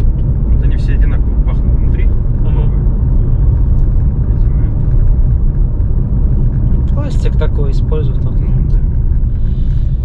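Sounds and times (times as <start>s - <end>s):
road and engine noise in car: 0.0s - 10.0s.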